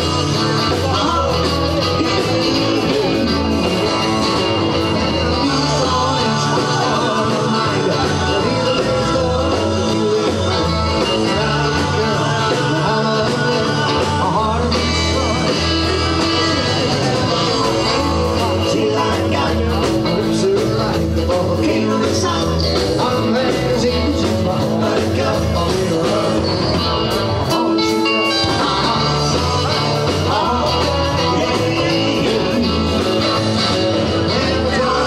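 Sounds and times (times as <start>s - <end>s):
bass guitar: 0.0s - 35.0s
drums: 0.0s - 35.0s
electric guitar: 0.0s - 35.0s
person singing: 0.0s - 35.0s.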